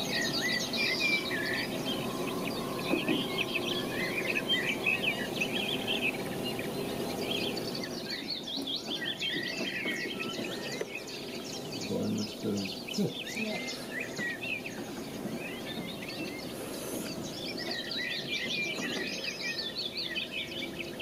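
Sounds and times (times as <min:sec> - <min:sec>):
songbirds chirping and trilling: 0:00.0 - 0:21.0
steady background noise: 0:00.0 - 0:21.0.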